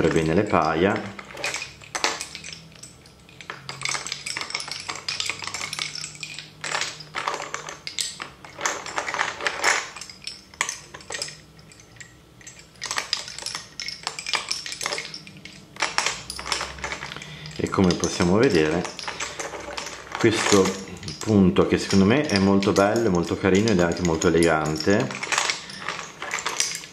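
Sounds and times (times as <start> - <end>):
lace bobbins clacking: 0.0 - 26.9.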